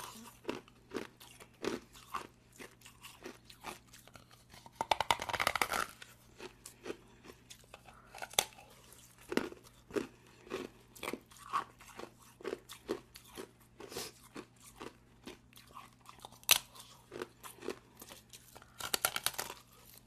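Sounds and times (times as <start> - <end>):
ice being bitten and chewed: 0.0 - 20.0.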